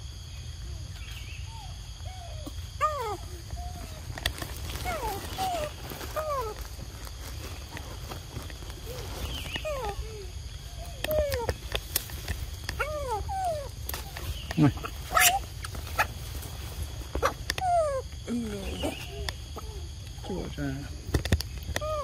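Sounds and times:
baby macaques calling: 1.4 - 6.7, 8.8 - 16.4, 17.1 - 20.3, 21.7 - 22.0.

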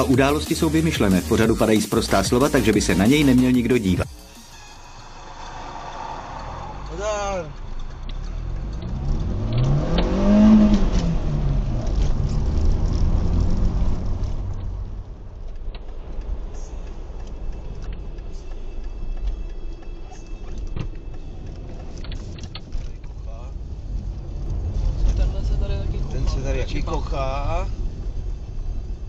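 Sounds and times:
low car driving hum: 4.6 - 29.0
car engine rising and falling: 4.7 - 19.9.

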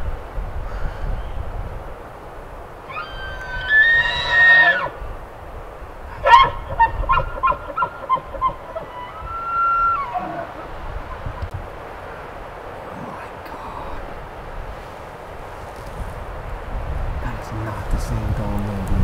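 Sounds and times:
elk bugling: 2.8 - 16.5.

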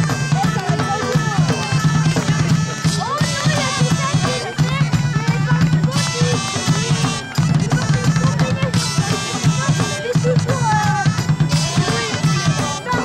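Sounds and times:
driving drumbeat: 0.0 - 13.0.

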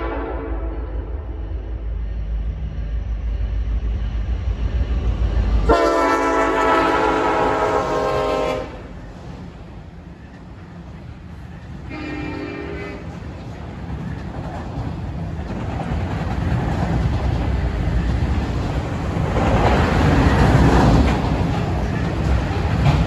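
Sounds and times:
train horn blast: 0.0 - 1.6, 5.7 - 9.0, 11.8 - 13.1
freight train rumble: 0.0 - 23.0.

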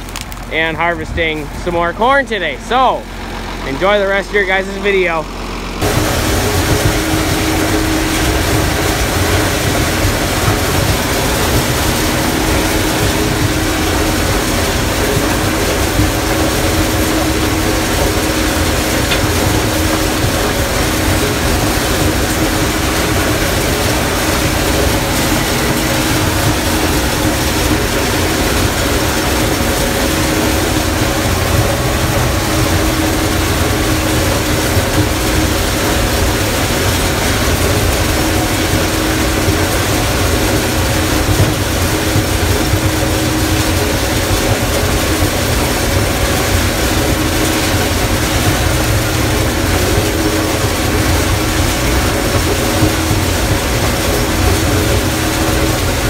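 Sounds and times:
combine harvester running under load: 0.0 - 56.0.

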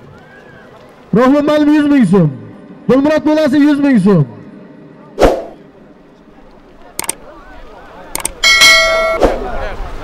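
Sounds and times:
crowd noise: 0.0 - 10.0
notification bell ding: 8.4 - 9.2.

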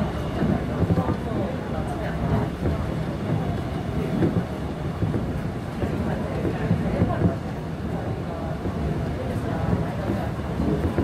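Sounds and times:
train wheels rumbling on track: 0.0 - 11.0.

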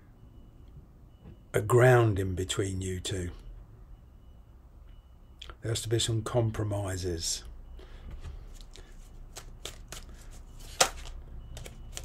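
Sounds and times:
cards flicking and tapping: 8.6 - 12.0.

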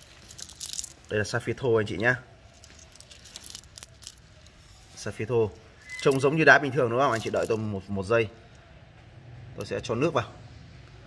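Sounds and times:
stones clicking together: 0.0 - 1.1, 2.7 - 4.2.

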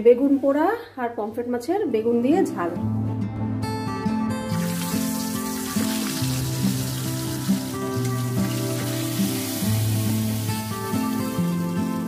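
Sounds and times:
background music with held notes: 0.0 - 12.0
fish sizzling in hot oil: 4.5 - 12.0.

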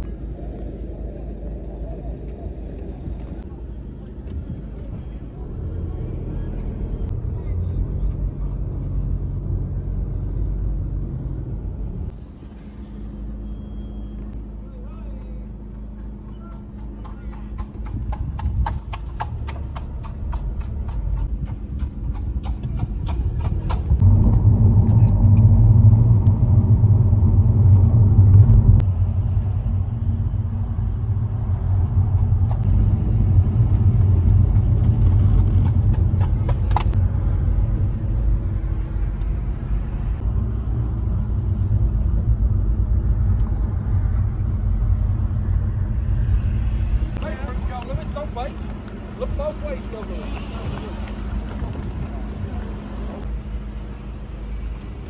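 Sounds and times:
car cabin rumble: 17.9 - 53.3.

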